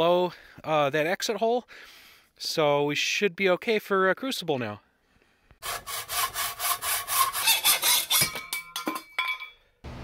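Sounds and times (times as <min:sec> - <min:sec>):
hacksaw cutting metal: 0:05.6 - 0:09.0
metal piece ringing: 0:07.7 - 0:09.7.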